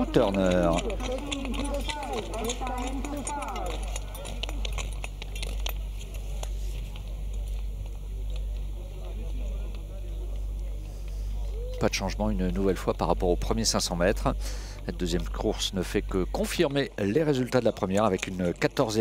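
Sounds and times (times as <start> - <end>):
faint voices: 0.0 - 12.9
steady low hum: 0.0 - 19.0.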